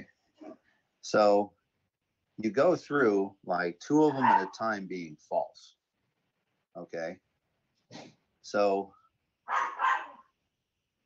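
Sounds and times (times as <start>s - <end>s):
animal call: 4.0s - 4.6s, 9.5s - 10.3s.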